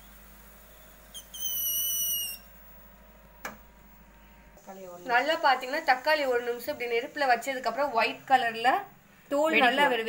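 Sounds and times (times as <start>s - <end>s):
high-pitched whistle: 0.7s - 2.5s.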